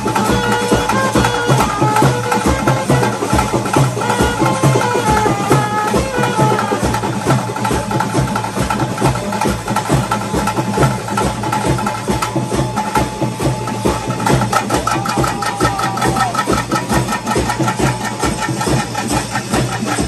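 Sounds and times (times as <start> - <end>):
wind instrument long notes: 0.0 - 8.0
fast continuous drumming: 0.0 - 20.0.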